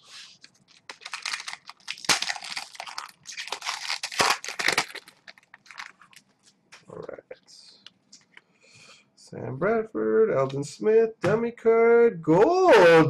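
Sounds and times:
foil wrapper tearing and crinkling: 0.1 - 6.3.

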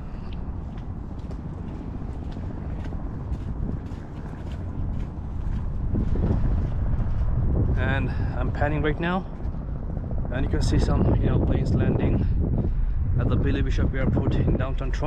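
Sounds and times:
footsteps on paved path: 0.0 - 7.8
wind buffeting microphone: 0.0 - 15.0.

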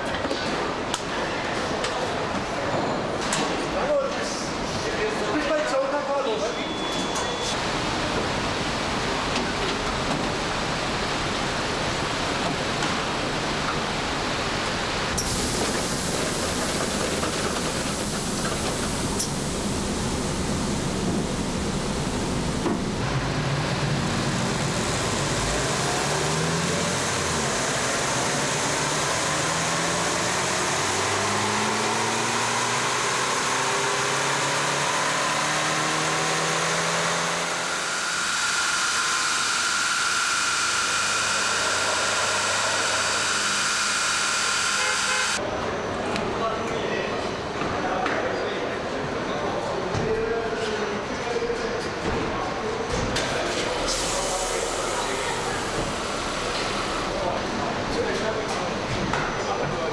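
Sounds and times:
machinery hiss: 15.2 - 29.0, 53.7 - 57.4
motor whine: 37.5 - 45.4.

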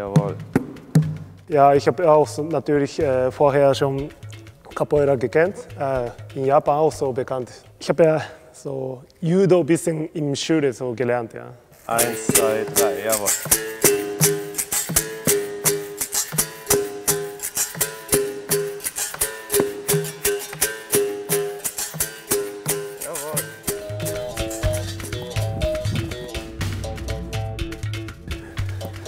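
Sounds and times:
hand drum: 0.0 - 2.4, 12.0 - 29.0
berimbau wire ringing: 11.9 - 27.0
deep bass line: 23.7 - 29.0.

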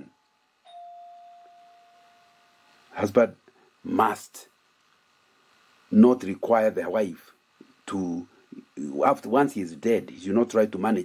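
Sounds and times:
chime-like tone: 0.0 - 2.8.

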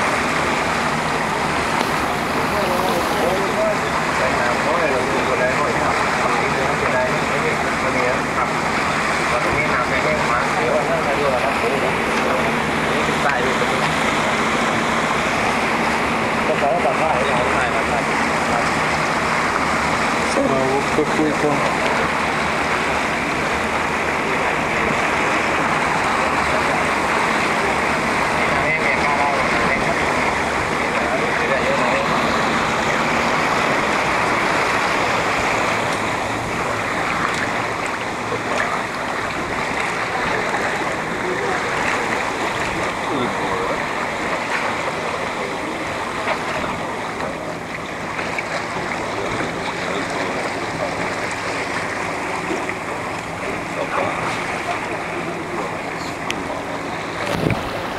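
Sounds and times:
motorboat engine drone: 0.0 - 57.9
water rushing along hull: 0.0 - 57.9.

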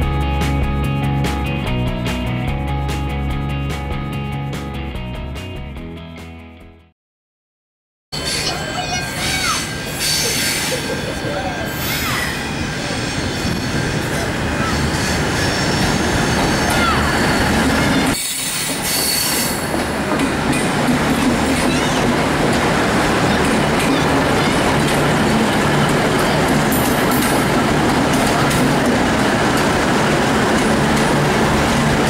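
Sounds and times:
diesel train passing: 0.0 - 5.0, 8.2 - 32.0
high wheel squeal: 8.2 - 19.7.

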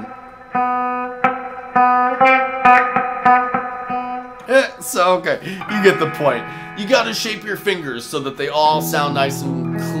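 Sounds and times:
clean electric guitar picking: 0.0 - 10.0.

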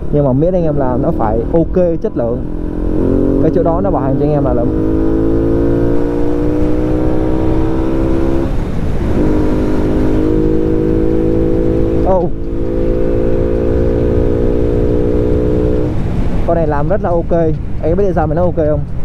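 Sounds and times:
motorcycle engine accelerating: 0.0 - 16.5
wind rumbling on microphone: 0.0 - 19.0.

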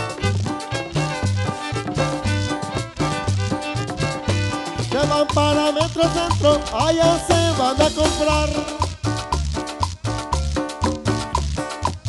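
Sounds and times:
drums dance beat: 0.0 - 12.0
guitar: 0.0 - 12.0
upright bass: 0.0 - 12.0.

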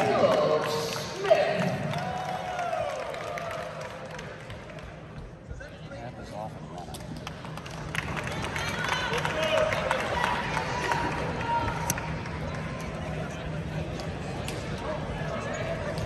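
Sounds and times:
indistinct talk of people: 4.6 - 16.0.

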